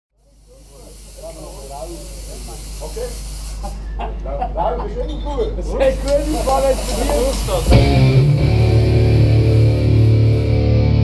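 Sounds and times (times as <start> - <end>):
fog jet hissing: 0.1 - 4.0, 5.8 - 10.7
voices in a hall: 0.3 - 7.7
low steady drone: 7.7 - 11.0.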